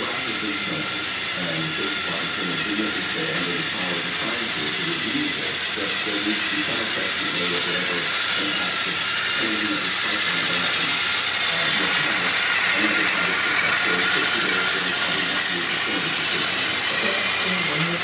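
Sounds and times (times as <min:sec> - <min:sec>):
adults talking: 0:00.0 - 0:18.0
toy train motor whirring: 0:00.0 - 0:18.0.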